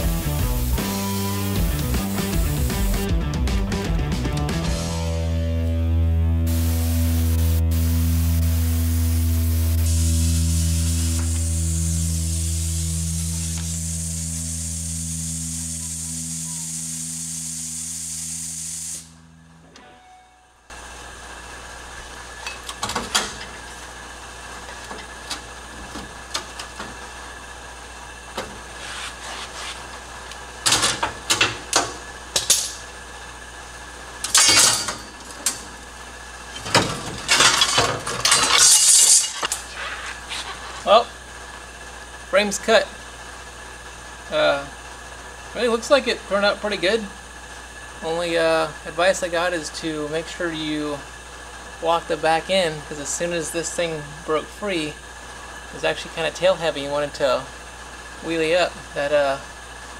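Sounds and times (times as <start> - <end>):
plasma cutter hissing: 0.0 - 3.1, 6.5 - 19.2, 38.6 - 41.0
low steady hum: 5.0 - 59.9
metal clanking and knocking: 22.4 - 23.6, 34.3 - 35.7, 36.5 - 39.6.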